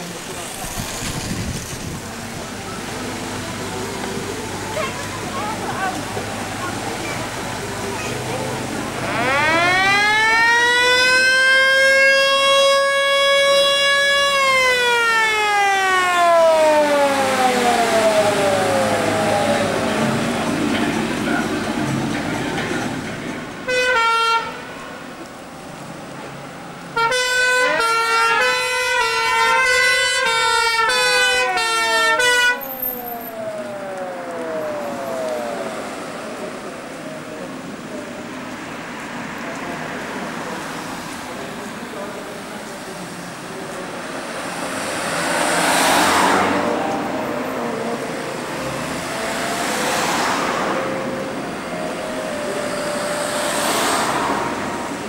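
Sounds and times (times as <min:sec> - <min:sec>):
wailing fire engine siren: 0:02.1 - 0:22.2, 0:23.7 - 0:24.8, 0:26.9 - 0:38.6, 0:43.3 - 0:55.0
two-tone siren: 0:09.0 - 0:20.3, 0:27.0 - 0:36.4, 0:46.2 - 0:55.0.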